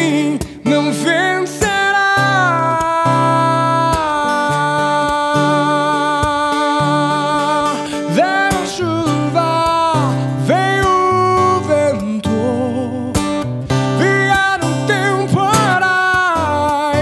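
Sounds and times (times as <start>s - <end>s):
acoustic guitar strumming: 0.0s - 17.0s
man singing: 0.0s - 17.0s.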